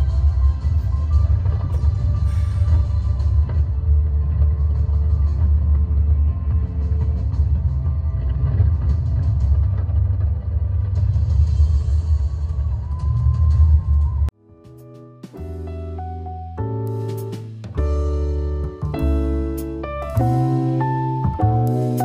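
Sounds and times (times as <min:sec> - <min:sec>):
deep rumble: 0:00.0 - 0:14.3
music: 0:00.0 - 0:22.0.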